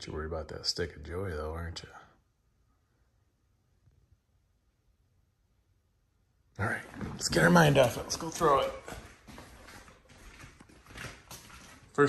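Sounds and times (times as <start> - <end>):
dog claws clicking on wood floor: 6.8 - 12.0.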